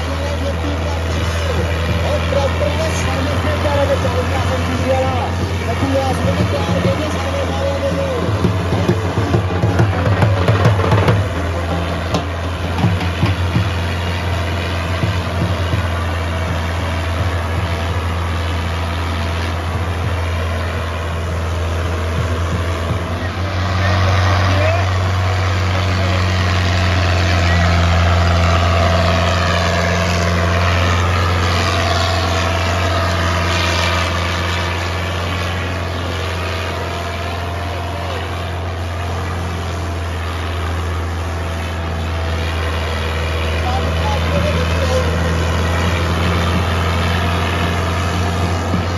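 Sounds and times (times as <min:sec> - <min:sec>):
tractor diesel engine under load: 0:00.0 - 0:48.9.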